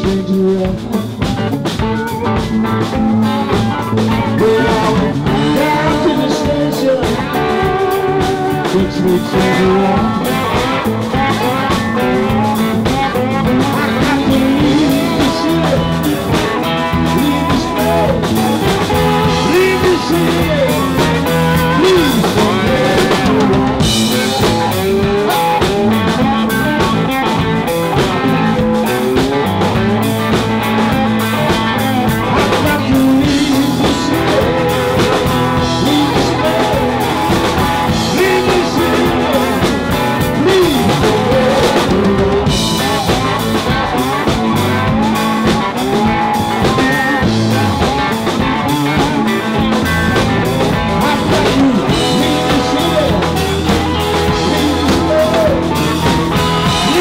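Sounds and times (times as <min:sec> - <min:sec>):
drum kit: 0:00.0 - 0:57.0
electric bass: 0:00.0 - 0:57.0
electric guitar: 0:00.0 - 0:57.0
harmonica through microphone: 0:00.0 - 0:57.0.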